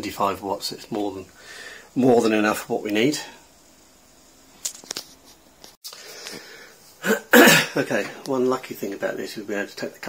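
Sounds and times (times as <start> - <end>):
breathing close to microphone: 1.4 - 2.0, 5.9 - 6.8.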